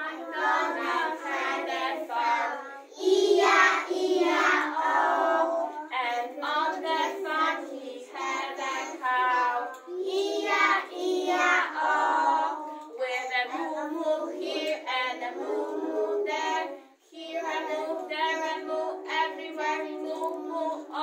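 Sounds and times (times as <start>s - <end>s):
children singing together: 0.0s - 21.0s.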